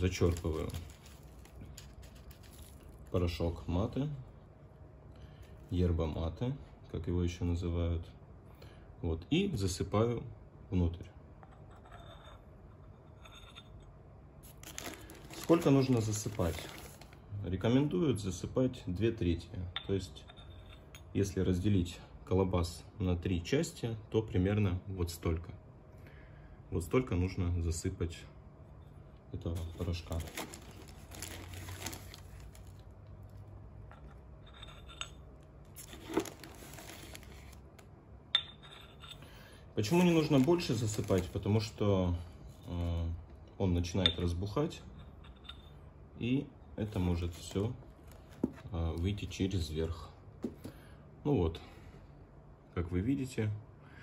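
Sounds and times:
dry leaves rustling from spoon: 0.0s - 3.4s, 14.5s - 17.2s, 29.6s - 32.8s, 35.8s - 37.6s, 39.8s - 41.6s.

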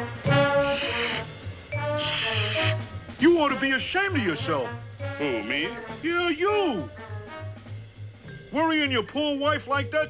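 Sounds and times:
brassy band music: 0.0s - 9.8s.

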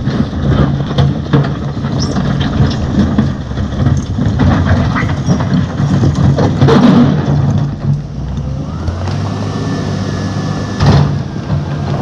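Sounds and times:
rock clattering: 0.0s - 8.0s
diesel engine working under load: 0.0s - 12.0s.

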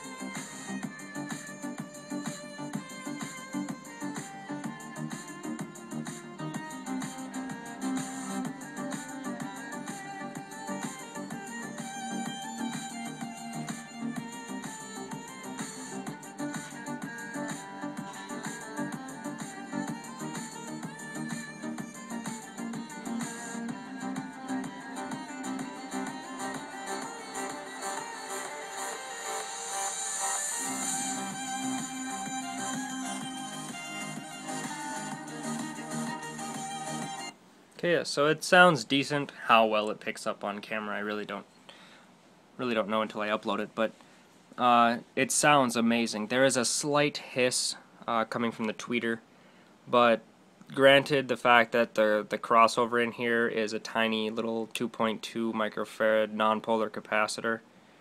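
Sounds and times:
music through speaker: 0.0s - 37.4s.

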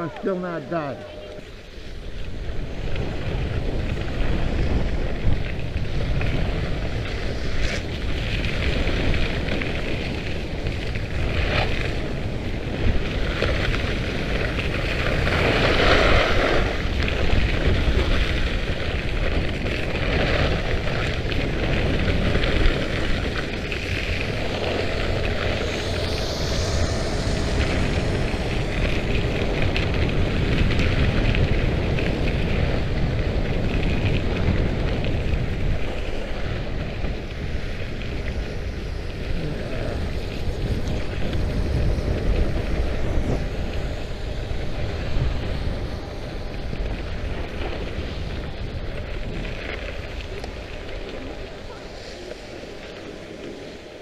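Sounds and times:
wind rushing over microphone: 0.0s - 54.0s
skis scraping over icy snow: 0.2s - 54.0s.

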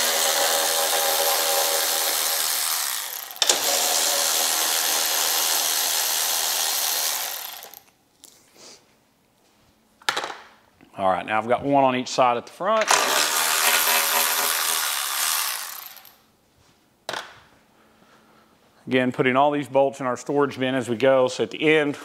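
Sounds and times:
cordless power tool motor whine: 0.0s - 7.8s.

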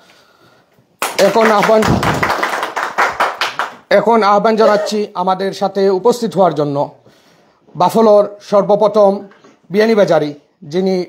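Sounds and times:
people applauding: 1.0s - 3.9s
man speaking over a microphone: 1.2s - 2.2s, 3.9s - 7.0s.

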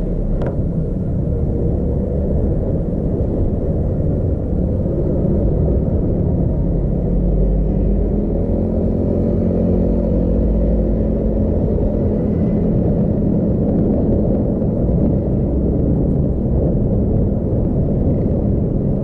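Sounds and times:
faint engine hum: 0.0s - 19.0s
road and engine rumble: 0.0s - 19.0s.

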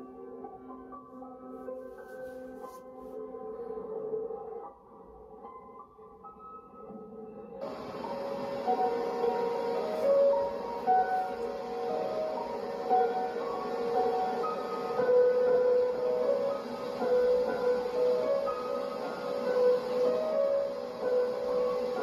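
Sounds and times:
piano playing slow melody: 0.0s - 22.0s.

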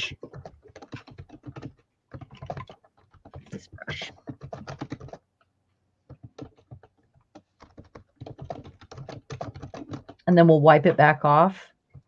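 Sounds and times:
rapid light clicks and taps: 0.0s - 10.3s.

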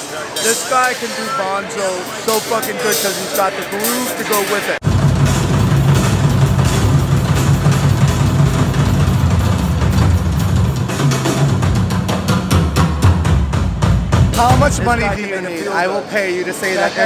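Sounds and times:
drum kit: 0.0s - 15.2s
live rock band playing: 0.4s - 15.2s.

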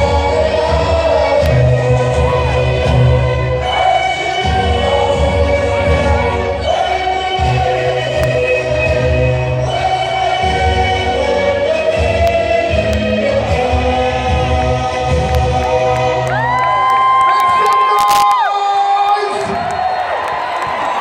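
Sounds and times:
choir-like singing: 0.0s - 17.1s
live concert music: 0.0s - 21.0s
crowd cheering: 15.8s - 21.0s.

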